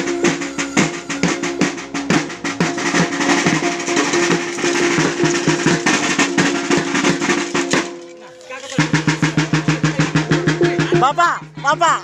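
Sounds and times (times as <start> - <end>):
ringing gong tones: 0.0 - 11.1
quick dense drum strokes: 0.0 - 12.0.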